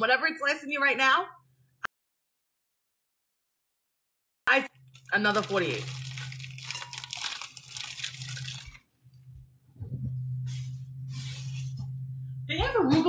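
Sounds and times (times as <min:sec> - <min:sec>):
plastic bag crinkling: 0:04.8 - 0:09.0
steady low hum: 0:07.7 - 0:13.0.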